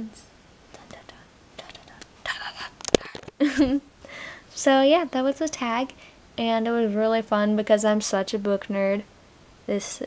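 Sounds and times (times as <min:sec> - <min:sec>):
soft whispered voice: 0:00.0 - 0:03.2.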